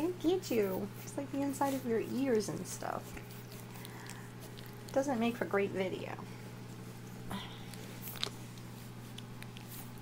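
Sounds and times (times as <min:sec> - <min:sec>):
faint puppy sounds: 0:00.0 - 0:05.5
puppies moving about: 0:00.0 - 0:05.8, 0:06.6 - 0:10.0
steady low hum: 0:00.0 - 0:10.0.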